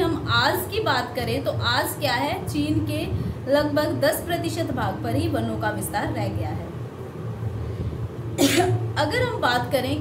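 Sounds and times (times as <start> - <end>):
low steady hum: 0.0 - 10.0
woman coughing: 8.4 - 8.8.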